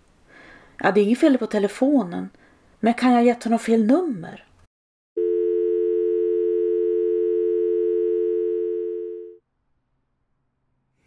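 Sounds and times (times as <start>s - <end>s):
telephone dial tone: 5.2s - 9.4s.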